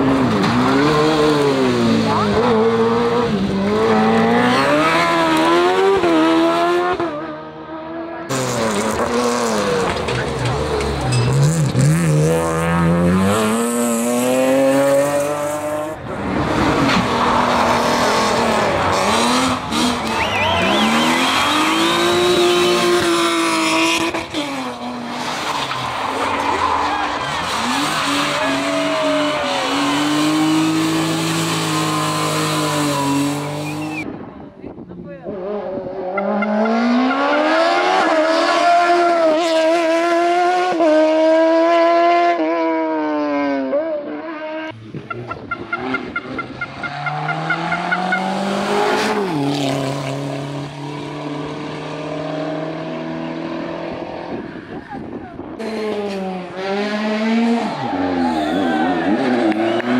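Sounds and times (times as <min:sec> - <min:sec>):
race car engines revving: 0:00.0 - 0:59.9
tyre squeal: 0:19.8 - 0:22.8, 0:25.4 - 0:34.0, 0:57.6 - 0:59.8.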